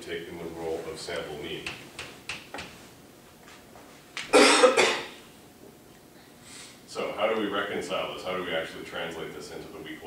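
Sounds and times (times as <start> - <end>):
man coughing: 4.3 - 5.2.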